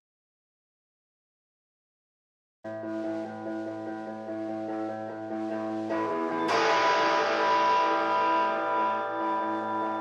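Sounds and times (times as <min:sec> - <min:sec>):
electric guitars sustained chord: 0:03.4 - 0:10.0
loud strummed guitar chord: 0:06.1 - 0:10.0.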